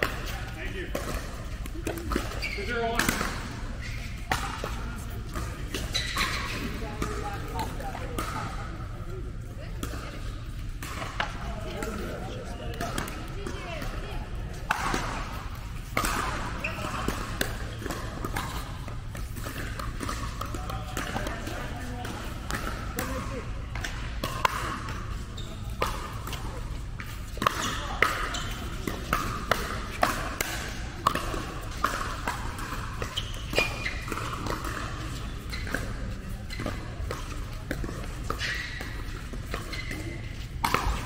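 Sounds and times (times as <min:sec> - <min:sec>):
ball bouncing on court: 0:00.0 - 0:09.0, 0:09.6 - 0:41.0
paddles hitting ball: 0:14.6 - 0:41.0.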